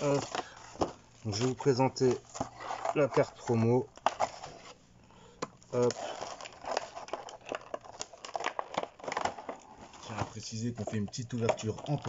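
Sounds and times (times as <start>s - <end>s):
plastic packaging crinkling: 0.0s - 4.8s, 5.6s - 12.0s.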